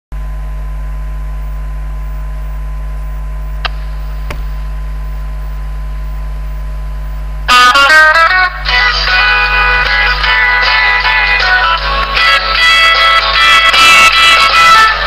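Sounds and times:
electrical hum with hiss: 0.2 - 15.0
song with guitar: 7.5 - 15.0.

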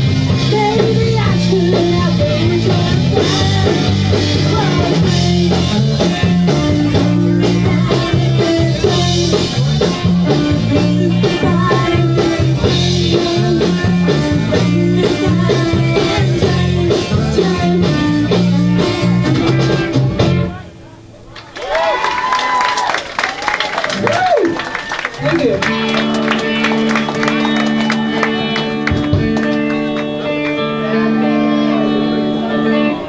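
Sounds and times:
live rock band playing: 0.0 - 21.1, 23.9 - 33.0.

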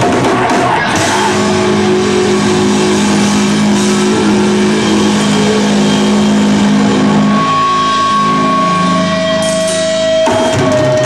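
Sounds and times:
high feedback tone: 0.0 - 11.0
distorted electric guitar held note: 0.8 - 11.0.

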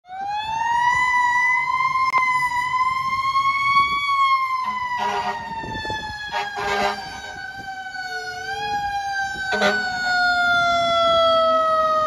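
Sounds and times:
fire engine siren: 0.0 - 12.0.

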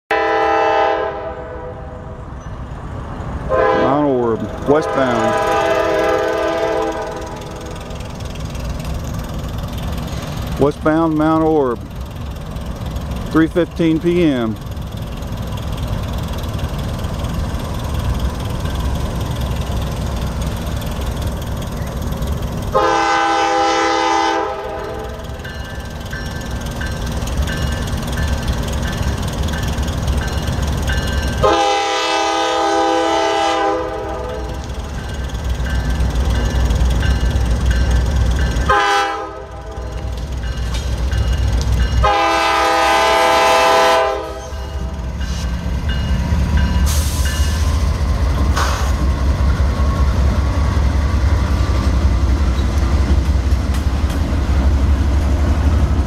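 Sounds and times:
locomotive air horn: 0.1 - 2.2, 3.5 - 7.7, 22.7 - 25.2, 31.4 - 34.6, 38.7 - 40.0, 42.0 - 44.9.

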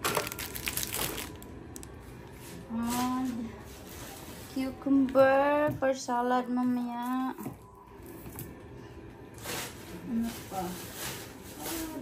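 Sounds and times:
plastic packaging crackling: 0.0 - 2.0.

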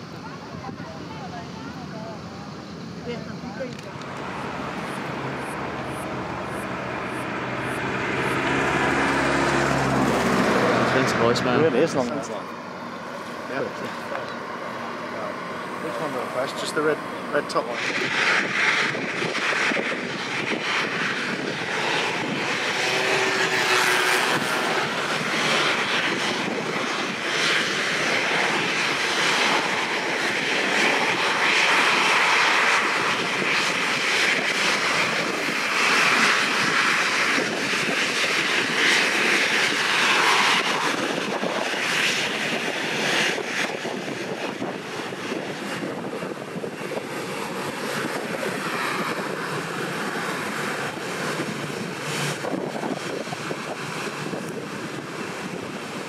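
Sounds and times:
jet engines whining: 0.0 - 56.0.

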